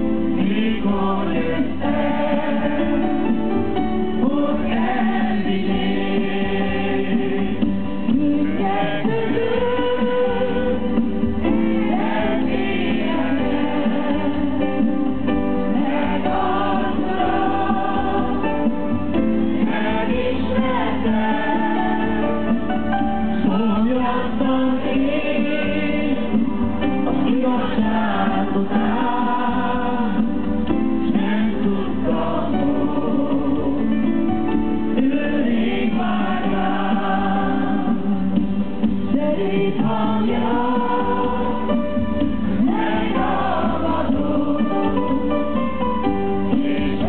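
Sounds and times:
group singing worship song: 0.0 - 47.0
woman singing into a microphone: 8.1 - 11.0.

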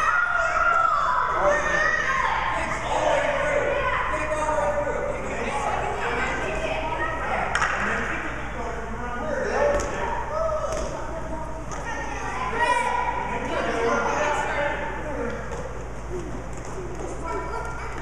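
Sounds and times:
children and adults calling: 0.0 - 7.5.

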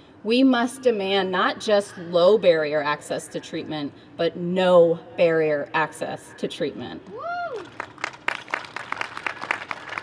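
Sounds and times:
small crowd applauding: 7.5 - 10.0.

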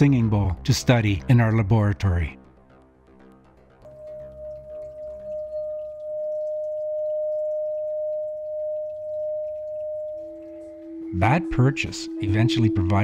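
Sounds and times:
crystal singing bowl tone: 3.9 - 13.0.

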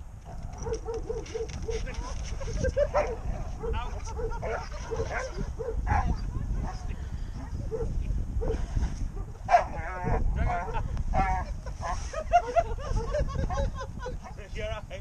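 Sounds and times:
wind rumble on microphone: 0.0 - 15.0
dog barking: 0.5 - 2.2, 2.8 - 6.9, 7.6 - 8.6, 9.2 - 9.8, 10.5 - 12.0.

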